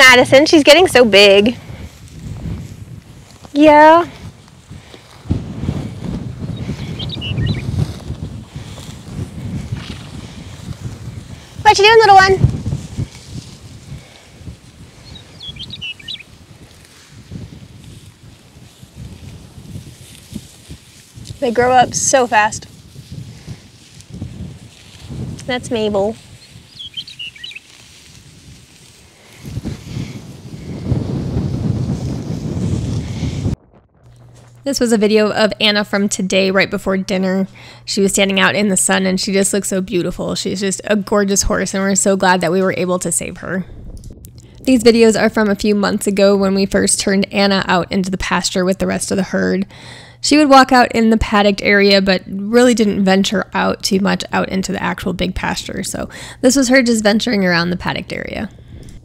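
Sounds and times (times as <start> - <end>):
wind buffeting microphone: 0.0 - 59.0
bird chirps: 6.5 - 7.7, 15.0 - 16.3, 26.4 - 27.7
loud low rushing rumble: 29.7 - 34.5, 43.6 - 46.0.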